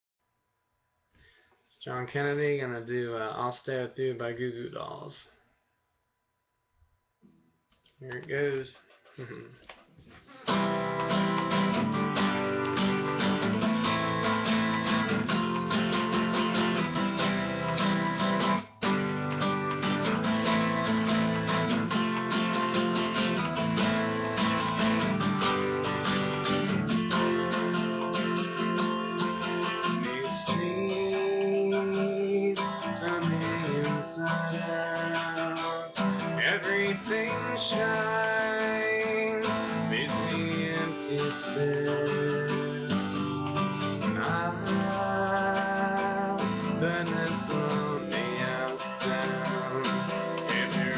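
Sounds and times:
acoustic guitar strumming: 0:10.1 - 0:50.9.

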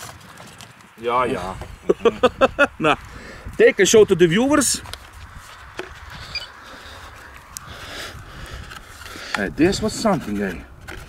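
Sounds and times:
wind rumble on microphone: 0:01.2 - 0:11.0.

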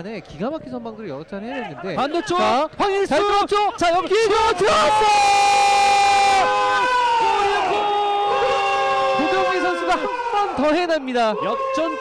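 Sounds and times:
commentator shouting: 0:01.5 - 0:12.0.

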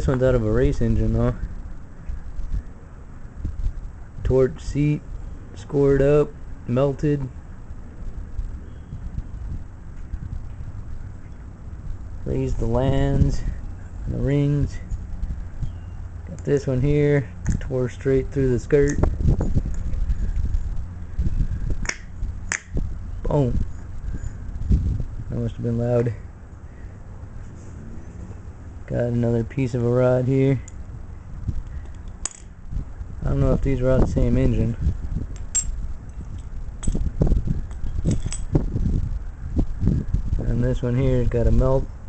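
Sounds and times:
steady low rumble: 0:00.0 - 0:42.0
metal pieces clinking on concrete: 0:31.8 - 0:32.6, 0:35.4 - 0:37.0, 0:37.7 - 0:38.5.

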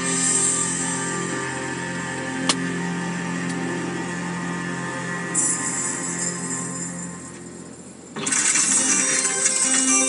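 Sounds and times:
steady low hum: 0:00.0 - 0:08.2
car radio music: 0:00.0 - 0:10.0.

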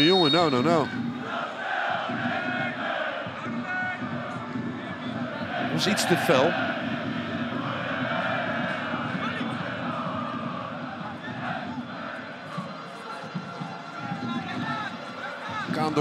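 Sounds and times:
stadium crowd shouting: 0:00.3 - 0:16.0.

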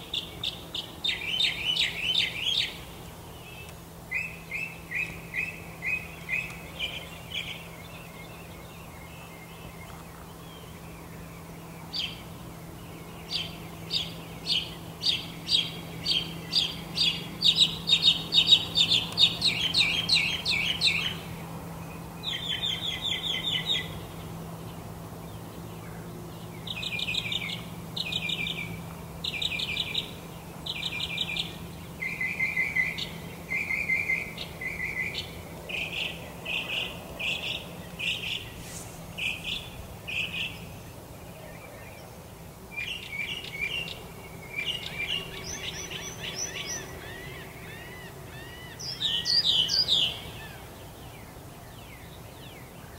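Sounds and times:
songbirds trilling: 0:00.0 - 0:52.9.

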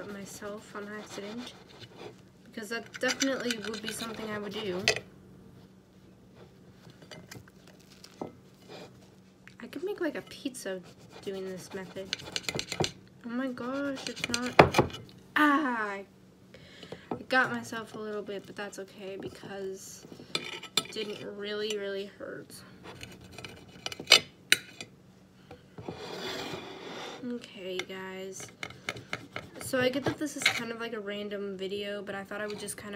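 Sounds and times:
knife clicking and scraping on plate: 0:02.8 - 0:04.2, 0:12.0 - 0:13.0.

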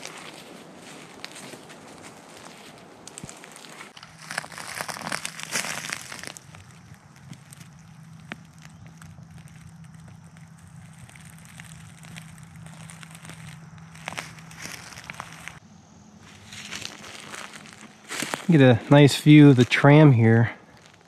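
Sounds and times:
footsteps crunching dry leaves: 0:00.0 - 0:15.6, 0:16.2 - 0:21.0
faint low hum: 0:05.3 - 0:20.6.

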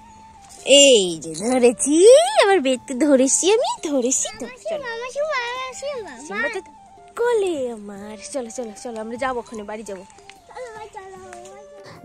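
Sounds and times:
faint children talking: 0:04.0 - 0:06.7, 0:10.4 - 0:12.0.

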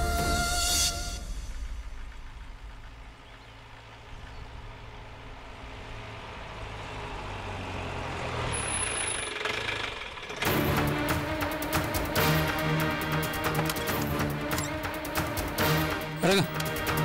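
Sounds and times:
vehicle engine driving on gravel: 0:01.3 - 0:12.4.

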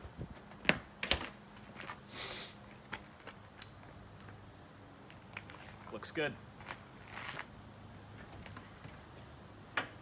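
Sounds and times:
short high hiss: 0:02.0 - 0:02.6.

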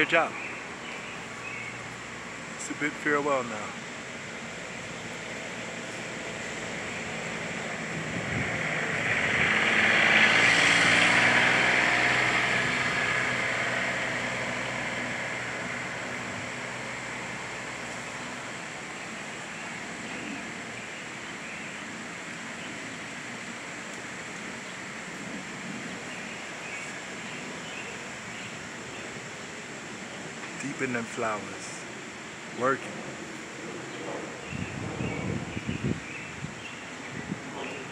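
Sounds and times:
engine passing: 0:00.0 - 0:37.9
outdoor hiss: 0:00.0 - 0:37.9.

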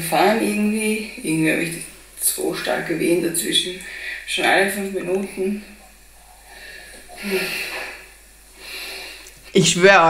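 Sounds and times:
woman breathing heavily: 0:03.8 - 0:04.3, 0:06.4 - 0:09.3
woman sighing: 0:07.0 - 0:08.0.

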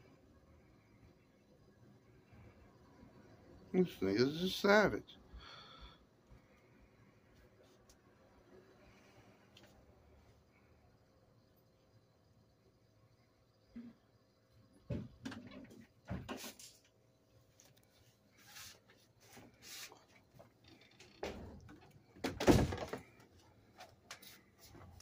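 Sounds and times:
thump: 0:14.9 - 0:15.2.

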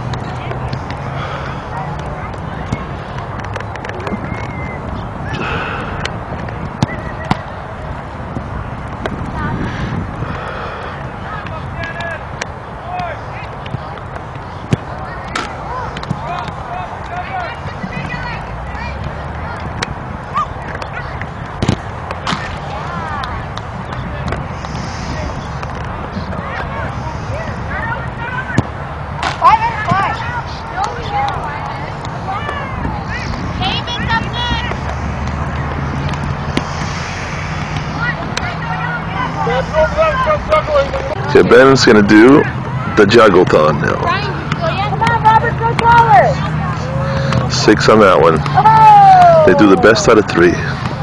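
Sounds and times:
steady low rumble: 0:00.0 - 0:12.7, 0:17.4 - 0:43.0
people and children talking: 0:00.0 - 0:51.0
distant high-pitched shouts: 0:48.5 - 0:49.6.

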